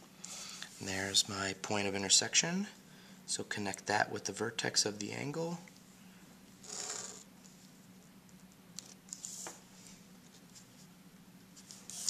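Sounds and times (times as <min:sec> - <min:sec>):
pencil scratching along ruler: 0:06.6 - 0:07.2.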